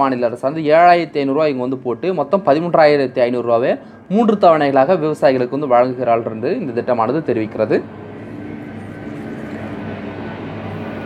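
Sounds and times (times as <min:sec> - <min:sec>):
steady background hum: 0:00.0 - 0:11.0
even hiss: 0:06.8 - 0:11.0.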